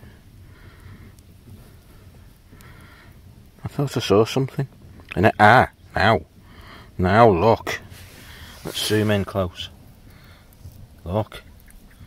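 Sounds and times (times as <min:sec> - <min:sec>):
faint ticks: 0:00.6 - 0:03.6, 0:11.4 - 0:12.0.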